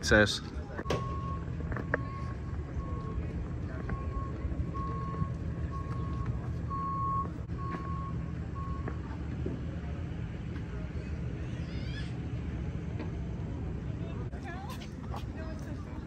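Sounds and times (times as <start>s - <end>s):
backup alarm beeping: 0.8s - 9.1s.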